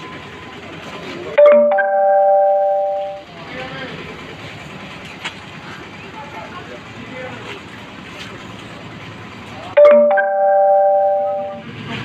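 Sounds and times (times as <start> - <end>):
street noise: 0.0 - 12.0
bell-like chime: 1.4 - 3.2, 9.8 - 11.6
faint indistinct voices: 3.2 - 10.0.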